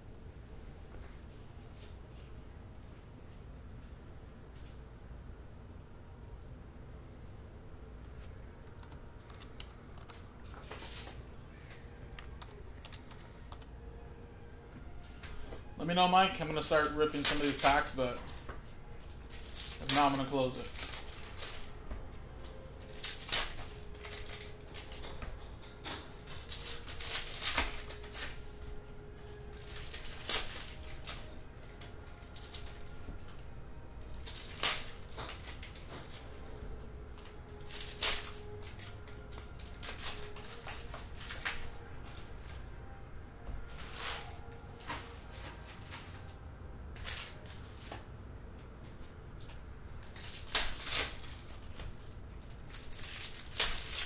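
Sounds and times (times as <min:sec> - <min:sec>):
foil card packs crinkling: 0:15.3 - 0:48.1, 0:49.3 - 0:54.0.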